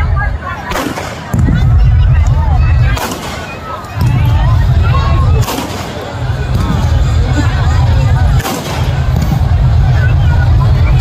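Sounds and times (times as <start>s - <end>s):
fireworks bangs: 0.6s - 7.2s, 8.2s - 9.9s
low booming rumble: 4.0s - 5.4s, 6.2s - 11.0s.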